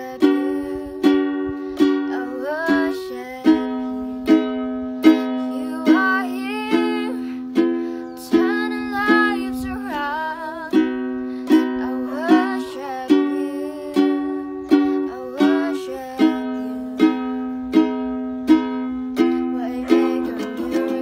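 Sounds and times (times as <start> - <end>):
girl singing softly: 0.0 - 21.0
ukulele strumming chords: 0.0 - 21.0.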